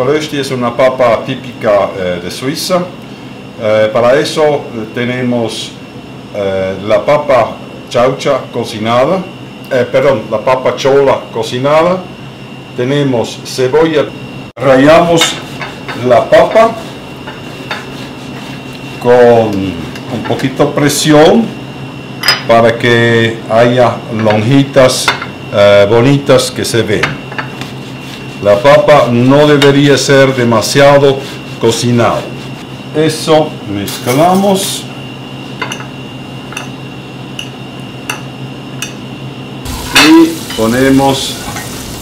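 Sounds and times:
steady background hum: 0.0 - 42.0
hands mixing potato on a plate: 14.9 - 20.4, 27.4 - 33.3
potato scraping on grater: 17.4 - 19.1.

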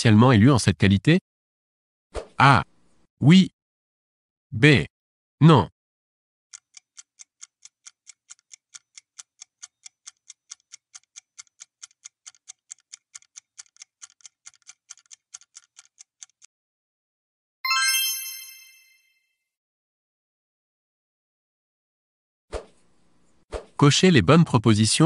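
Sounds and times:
clock-like ticking: 6.5 - 16.5.

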